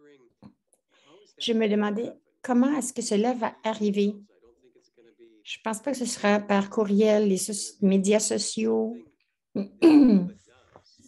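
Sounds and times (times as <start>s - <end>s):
person clearing throat: 9.6s - 10.4s.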